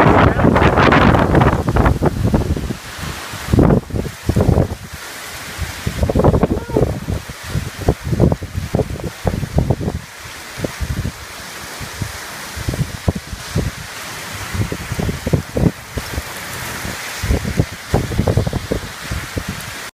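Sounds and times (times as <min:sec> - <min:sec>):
heavy rain falling: 0:00.0 - 0:19.9
wind buffeting microphone: 0:00.0 - 0:19.9.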